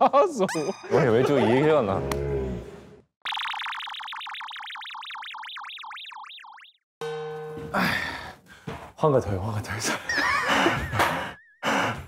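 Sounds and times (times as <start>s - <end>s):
electronic warbling tone: 3.2s - 6.9s.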